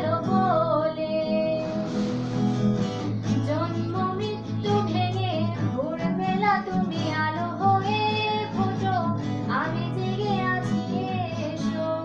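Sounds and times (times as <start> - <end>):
woman singing: 0.0 - 2.2, 3.3 - 12.0
acoustic guitar: 0.0 - 12.0.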